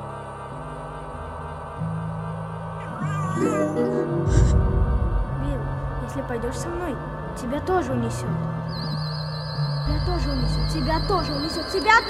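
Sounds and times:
wavering high tone: 2.8s - 12.0s
loud deep rumble: 4.2s - 12.0s.

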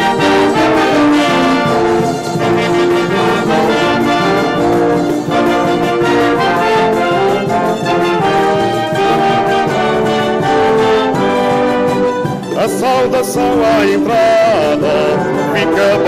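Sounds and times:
brass and guitar band playing: 0.0s - 16.0s.

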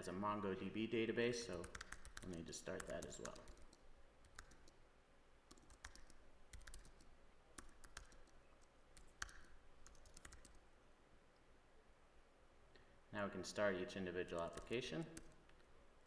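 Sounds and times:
faint keyboard typing: 1.5s - 4.8s, 5.4s - 10.7s, 14.3s - 15.7s.

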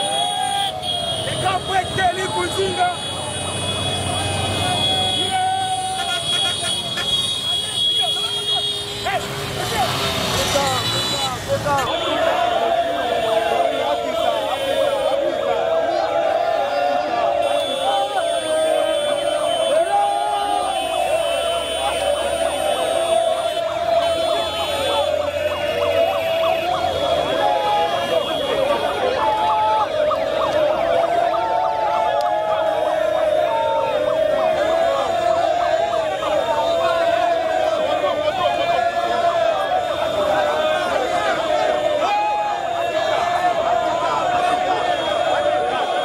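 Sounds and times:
crowd shouting: 0.0s - 46.0s
running vehicles: 0.0s - 46.0s
vehicle horn blast: 4.7s - 9.1s.

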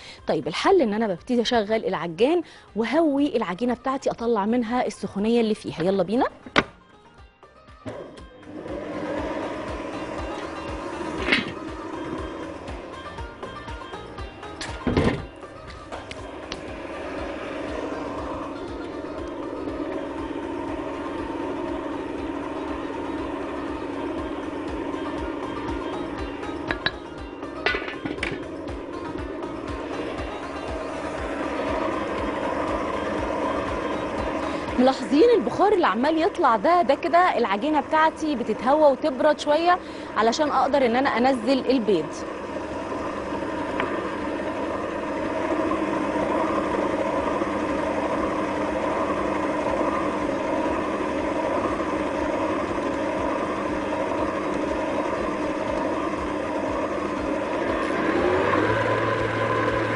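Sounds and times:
stand mixer running: 7.9s - 59.9s.

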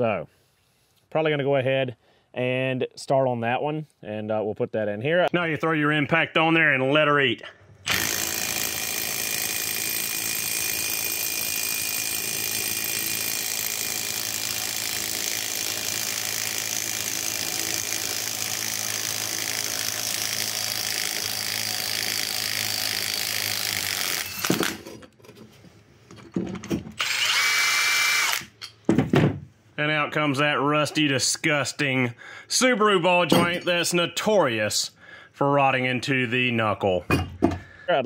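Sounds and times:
impact wrench running: 7.9s - 25.0s, 27.0s - 28.6s.

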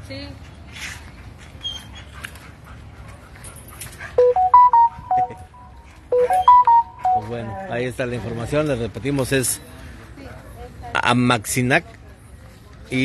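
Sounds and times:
electronic beeping melody: 4.2s - 7.4s.

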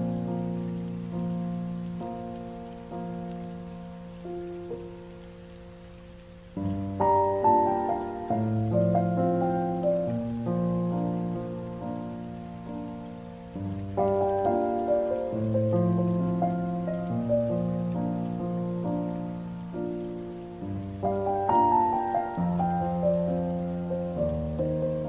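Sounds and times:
faint steady hiss: 0.0s - 25.0s
slow piano ballad: 0.0s - 25.0s.

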